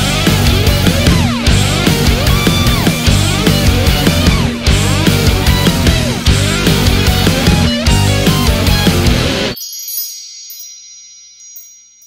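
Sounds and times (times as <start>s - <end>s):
shimmering chime: 9.5s - 12.0s.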